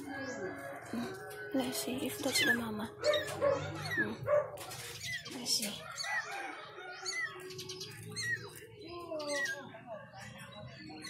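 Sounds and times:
kittens mewing: 0:02.2 - 0:04.3.

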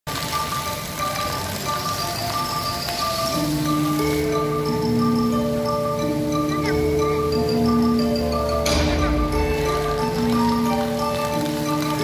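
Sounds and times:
fountain water splashing on paving: 0:00.1 - 0:12.0
music of held notes: 0:00.1 - 0:12.0.

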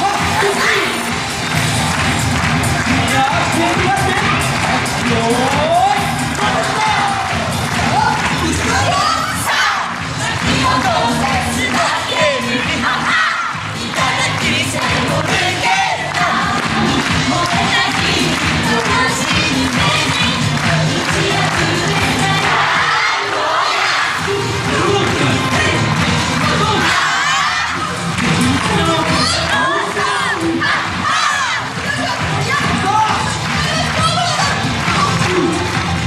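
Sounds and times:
dance music with singing: 0:00.0 - 0:36.0
shouts and cheering: 0:00.0 - 0:36.0.

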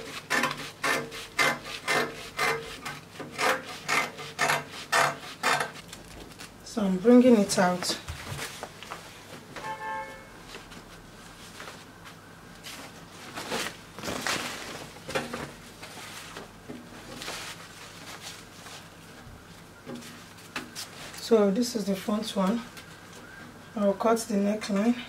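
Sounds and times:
fabric rustling: 0:07.8 - 0:21.3.

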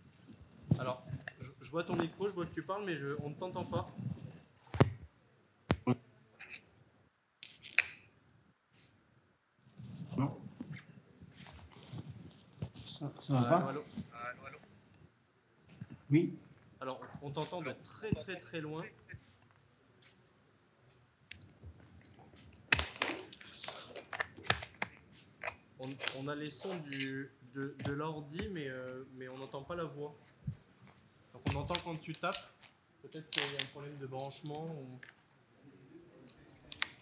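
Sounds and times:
faint clicks and rustles: 0:09.6 - 0:35.4, 0:36.1 - 0:37.0.

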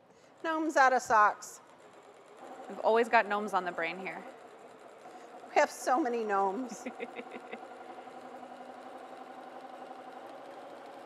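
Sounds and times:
sewing machine running: 0:00.2 - 0:11.0.

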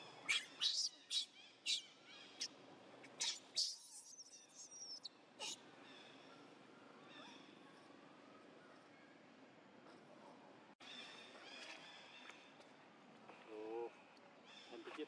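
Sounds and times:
infant monkey screaming: 0:00.2 - 0:02.5, 0:03.1 - 0:05.6.

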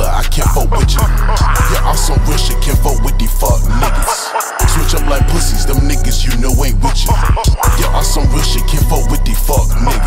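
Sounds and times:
deep sustained bass: 0:00.0 - 0:10.0
fast hi-hats: 0:00.0 - 0:10.0
hip hop beat: 0:00.0 - 0:10.0
person rapping: 0:00.0 - 0:10.0.

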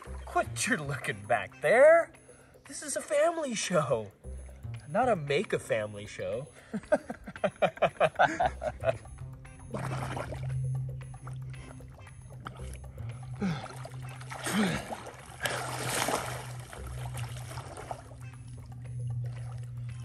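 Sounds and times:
water splashing and sloshing: 0:00.0 - 0:01.4, 0:08.7 - 0:20.0
background music: 0:00.0 - 0:20.0.

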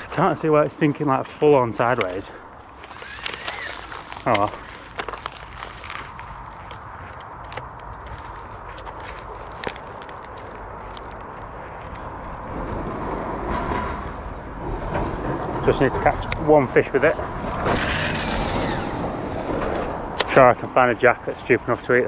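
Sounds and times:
light clicks and rustles: 0:00.0 - 0:16.6
outdoor background noise: 0:00.0 - 0:22.0.

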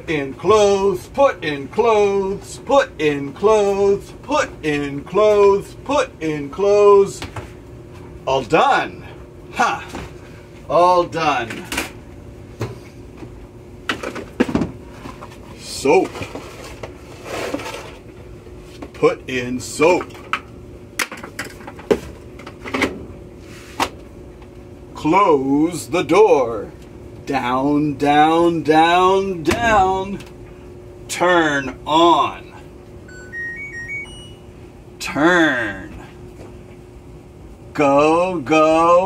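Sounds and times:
washing machine electronic chime: 0:33.0 - 0:34.6.

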